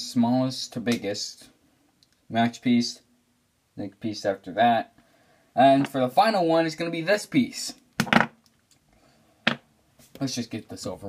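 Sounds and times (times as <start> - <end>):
sharp knocks from handling objects: 8.0 - 8.4, 9.5 - 9.7.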